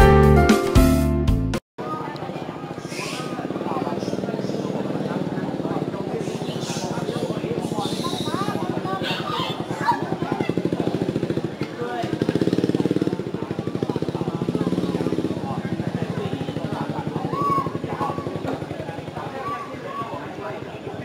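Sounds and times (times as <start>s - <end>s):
small engine running: 2.3s - 21.0s
short voice-like calls: 6.2s - 10.0s, 17.1s - 18.5s.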